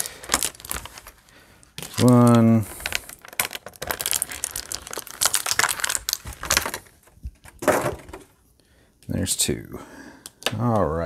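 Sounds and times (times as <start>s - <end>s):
plastic packaging crinkling: 0.0s - 8.2s.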